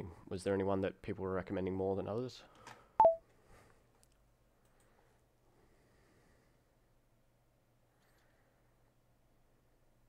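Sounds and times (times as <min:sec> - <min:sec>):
electronic blip stepping down: 0:03.0 - 0:03.2.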